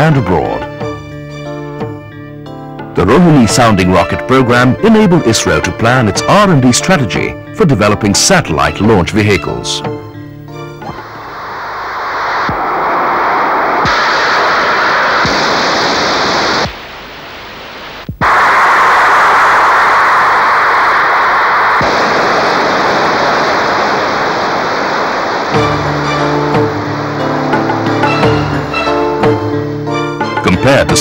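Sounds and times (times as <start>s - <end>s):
rocket engine roar: 10.8s - 31.0s
music with sustained tones: 25.4s - 31.0s.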